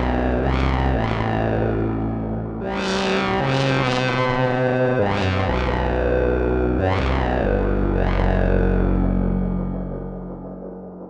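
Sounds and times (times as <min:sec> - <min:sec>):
buzzy low synthesizer notes: 0:00.0 - 0:11.0.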